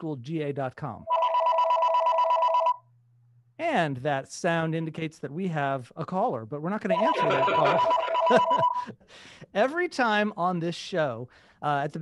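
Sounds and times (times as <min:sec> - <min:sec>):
electronic ring tone warble: 0:01.1 - 0:02.8, 0:06.9 - 0:08.9.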